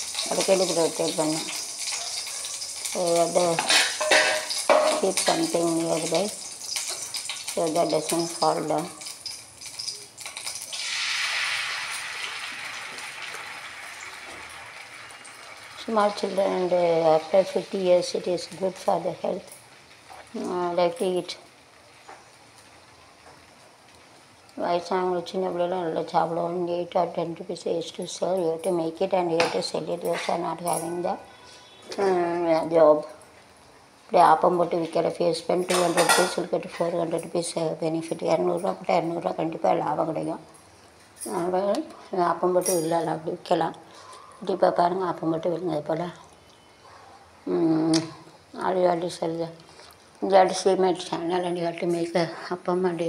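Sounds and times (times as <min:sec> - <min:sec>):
batter sizzling in hot pan: 0:00.0 - 0:21.2, 0:35.4 - 0:36.6
woman speaking: 0:00.2 - 0:01.5, 0:02.9 - 0:03.9, 0:04.8 - 0:06.4, 0:07.6 - 0:09.0, 0:15.8 - 0:19.6, 0:20.3 - 0:21.5, 0:24.6 - 0:31.3, 0:31.9 - 0:33.2, 0:34.1 - 0:40.5, 0:41.2 - 0:43.8, 0:44.4 - 0:46.3, 0:47.5 - 0:49.6, 0:50.2 - 0:53.0.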